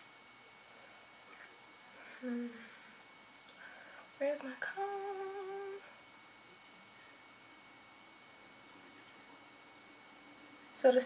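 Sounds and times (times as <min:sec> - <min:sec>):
woman humming: 0:02.1 - 0:03.0, 0:04.2 - 0:06.0.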